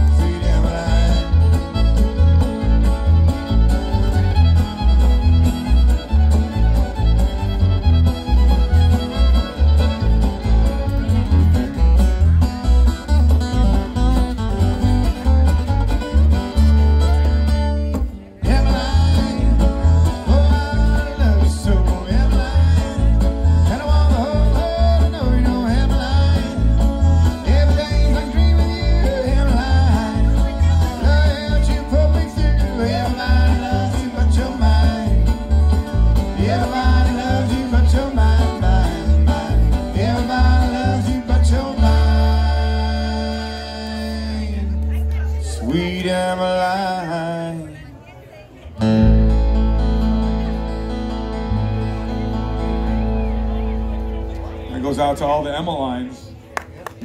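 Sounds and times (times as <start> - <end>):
bluegrass string band playing: 0.0 - 57.0.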